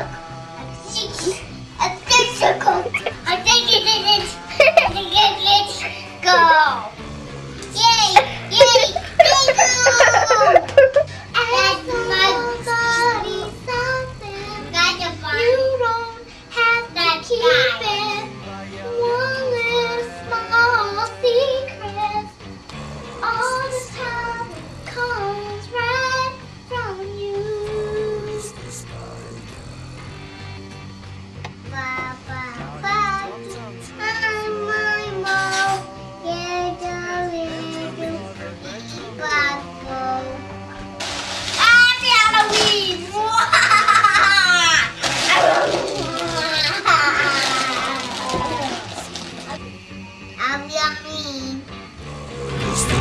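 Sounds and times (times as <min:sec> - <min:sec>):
musical accompaniment: 0:00.0 - 0:43.2, 0:44.9 - 0:53.0
girl singing: 0:00.8 - 0:07.0, 0:07.7 - 0:22.4, 0:23.2 - 0:29.4, 0:31.6 - 0:40.9, 0:41.5 - 0:49.7, 0:50.4 - 0:51.7.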